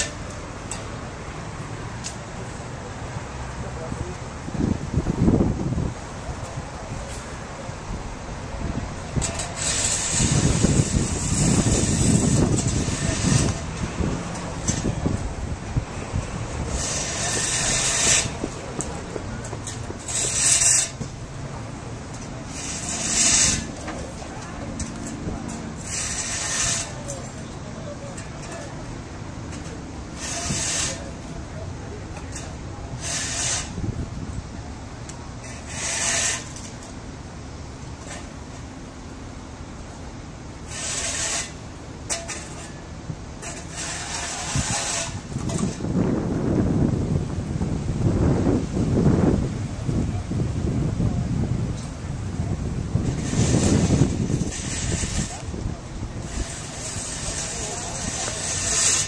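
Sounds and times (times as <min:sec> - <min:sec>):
low traffic rumble: 0:00.0 - 0:59.0.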